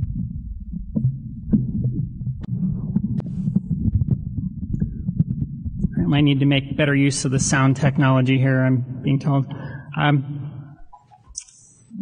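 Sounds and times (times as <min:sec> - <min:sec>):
microphone knocks and clicks: 0:00.0 - 0:06.8
microphone handling rumble: 0:00.0 - 0:08.3.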